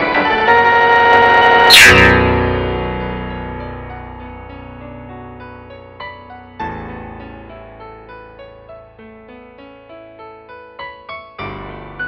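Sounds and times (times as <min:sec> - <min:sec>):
huge piano chord ringing: 0:00.0 - 0:09.5
fast downward piano run: 0:00.0 - 0:12.0.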